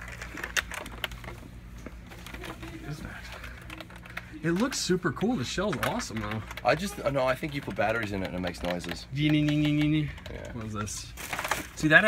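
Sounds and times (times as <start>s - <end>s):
steady low hum: 0.0s - 12.0s
plastic toy clicks and knocks: 3.6s - 11.6s.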